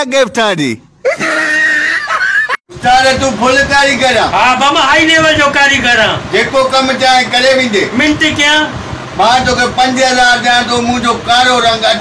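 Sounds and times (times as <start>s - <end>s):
person screaming: 1.1s - 2.1s.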